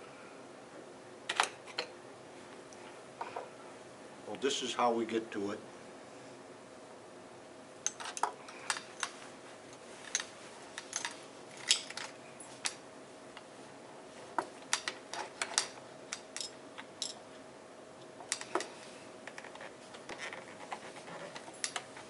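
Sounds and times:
screwdriver clicks on metal parts: 14.7 - 17.2, 18.3 - 18.7, 21.4 - 21.9.

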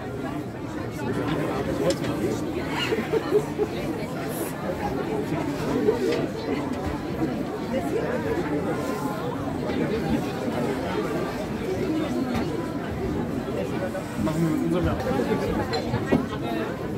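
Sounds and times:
chatter of people talking: 0.0 - 16.9.

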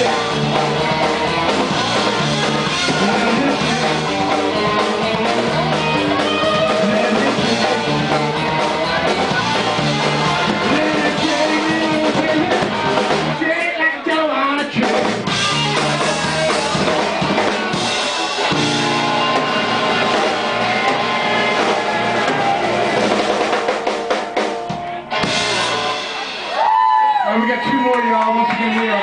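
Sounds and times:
blues rock band playing: 0.0 - 29.0.

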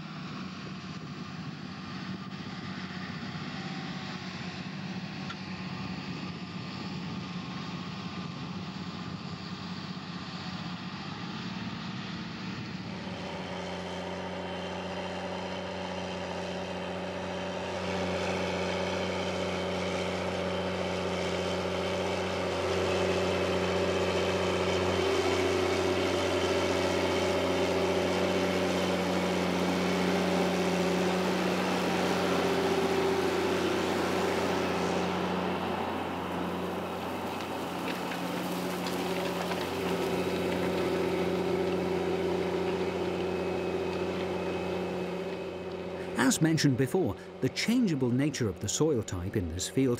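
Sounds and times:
tractor diesel engine under load: 0.0 - 49.9.

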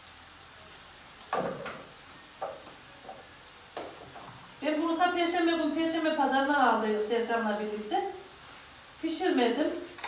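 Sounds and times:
vegetables sizzling in a pan: 0.0 - 10.0.

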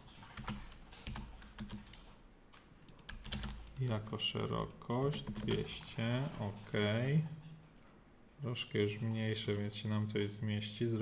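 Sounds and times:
keyboard keystrokes clicking: 0.3 - 5.9.

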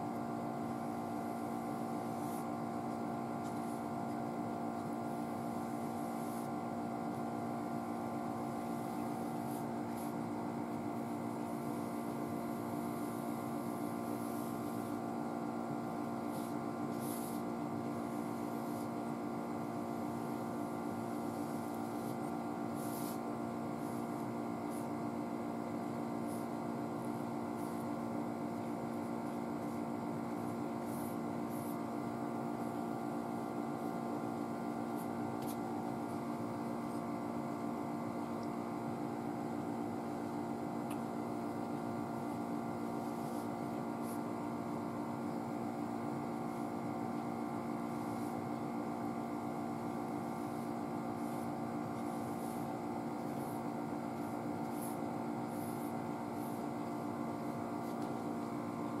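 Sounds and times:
steady room hum: 0.0 - 59.0.

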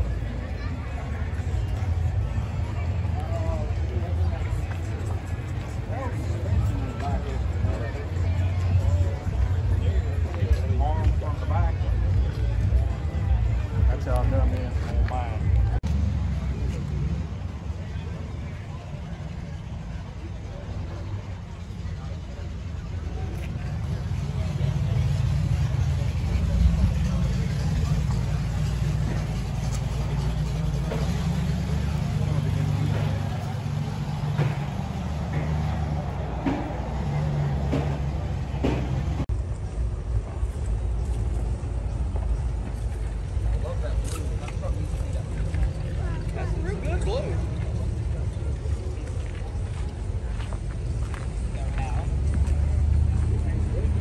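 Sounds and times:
people talking in background: 0.0 - 54.0
steady low rumble: 0.0 - 54.0.

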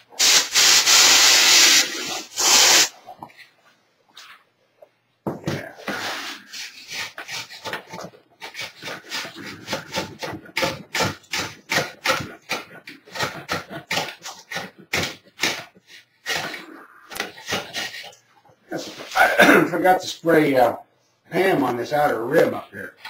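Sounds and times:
putty knife scraping: 5.8 - 18.2.

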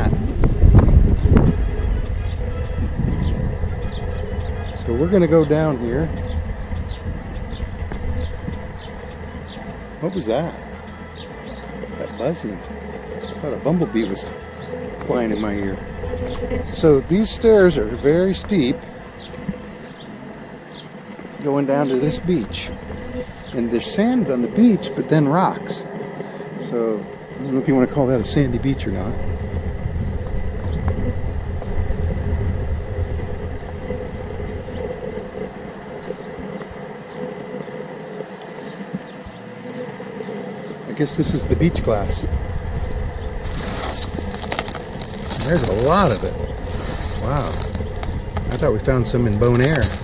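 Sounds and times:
faint buzzing hum: 0.0 - 50.0
footstep on stone steps: 43.4 - 50.0
glass pieces crunching and clicking: 43.5 - 48.6.

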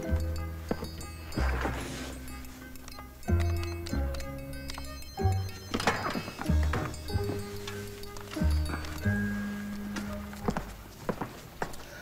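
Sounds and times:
hard-soled footsteps on hard floor: 0.6 - 2.3, 5.6 - 11.9.

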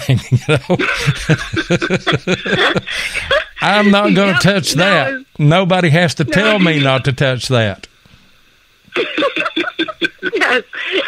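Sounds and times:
people laughing: 0.0 - 5.2, 6.2 - 7.2, 8.9 - 11.0.

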